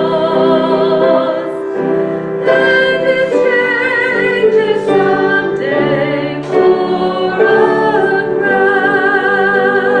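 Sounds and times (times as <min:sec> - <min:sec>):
musical accompaniment: 0:00.0 - 0:10.0.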